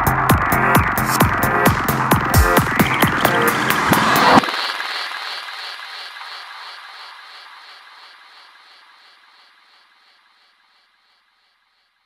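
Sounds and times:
pulsing echoing synth: 0:00.0 - 0:06.1.

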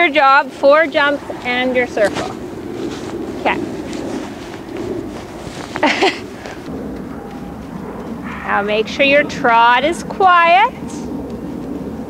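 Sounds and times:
horse hoofbeats on dirt: 0:00.0 - 0:12.0
low outdoor rumble: 0:00.0 - 0:12.0.

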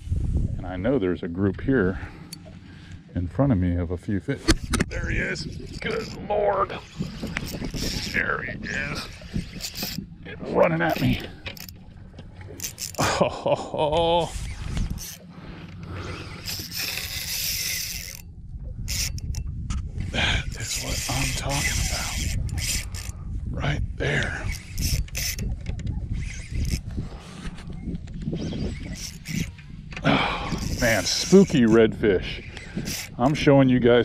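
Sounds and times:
wind rumble on microphone: 0:00.0 - 0:02.2, 0:04.3 - 0:34.0
fishing reel clicks: 0:06.9 - 0:08.2, 0:09.0 - 0:10.0, 0:10.9 - 0:11.8, 0:12.6 - 0:13.0, 0:14.3 - 0:15.2, 0:16.1 - 0:18.3, 0:18.9 - 0:19.4, 0:20.5 - 0:23.2, 0:24.2 - 0:26.9, 0:27.7 - 0:29.7, 0:30.4 - 0:33.5.

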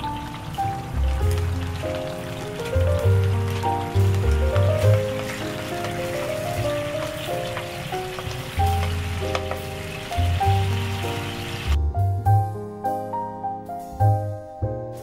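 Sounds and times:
butter sizzling in a frying pan: 0:00.0 - 0:11.8
soft keyboard music: 0:00.0 - 0:15.0
wooden spatula stirring: 0:01.2 - 0:09.8.

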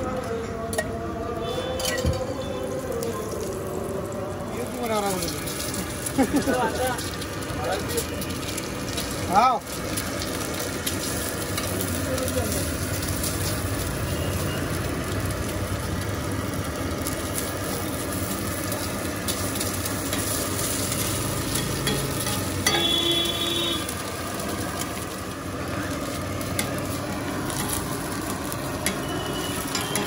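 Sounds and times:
eggs sizzling in oil: 0:00.8 - 0:30.0
metal spatula scraping iron: 0:20.1 - 0:22.9.

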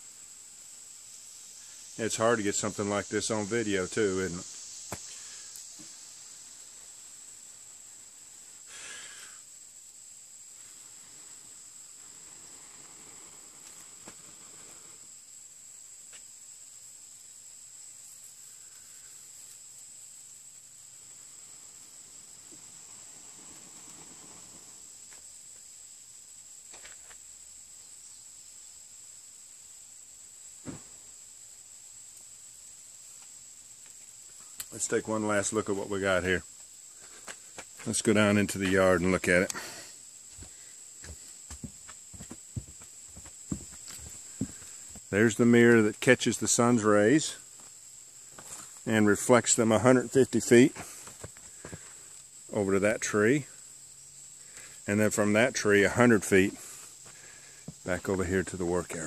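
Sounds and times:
high insect drone: 0:00.0 - 0:59.0.

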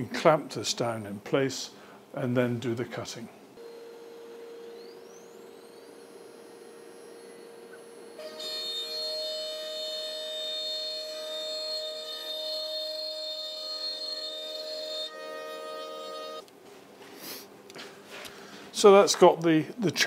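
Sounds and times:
cnc router machine whine: 0:03.6 - 0:16.5.

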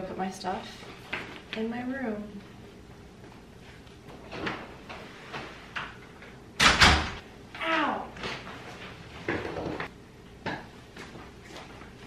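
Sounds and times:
door banging shut: 0:06.6 - 0:07.2.

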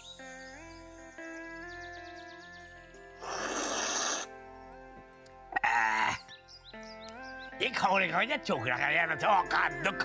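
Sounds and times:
background music with held notes: 0:00.0 - 0:10.0
man slurping tea: 0:03.2 - 0:04.3.

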